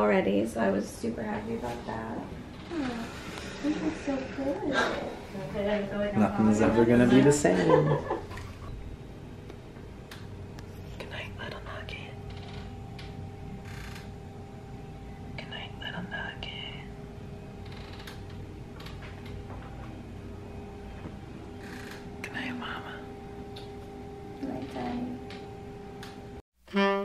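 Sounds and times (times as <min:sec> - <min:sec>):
steady low hum: 0:00.0 - 0:27.0
soft whispering: 0:10.7 - 0:12.2, 0:15.4 - 0:17.0, 0:22.2 - 0:23.2.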